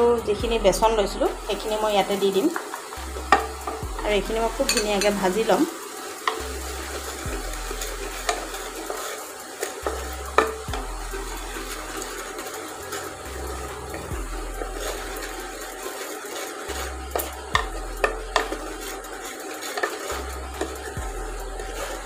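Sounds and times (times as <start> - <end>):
flour sizzling in hot fat: 0.0 - 22.0
wooden spatula scraping pot: 0.5 - 22.0
spatula knocking on pot: 2.5 - 5.3, 17.2 - 18.6.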